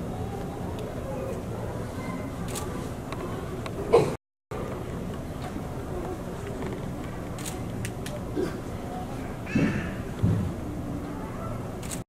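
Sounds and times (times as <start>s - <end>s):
steady buzzing room tone: 0.0s - 12.0s.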